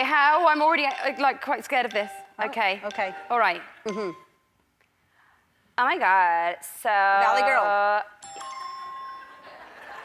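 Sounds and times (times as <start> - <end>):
electronic chime ding: 0.9 - 4.4, 8.2 - 9.4.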